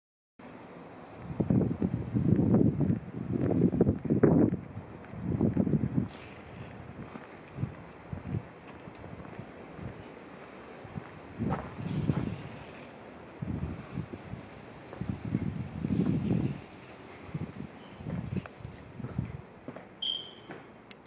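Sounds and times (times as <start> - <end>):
wind buffeting microphone: 1.2 - 19.6.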